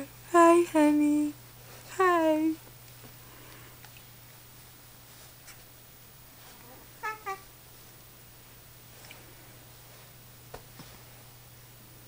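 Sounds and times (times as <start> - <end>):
baby cooing: 6.6 - 7.5.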